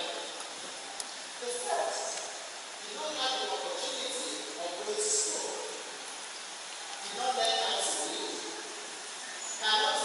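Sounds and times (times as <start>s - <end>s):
person speaking in a large hall: 0.0s - 10.0s
steady hiss: 0.0s - 10.0s.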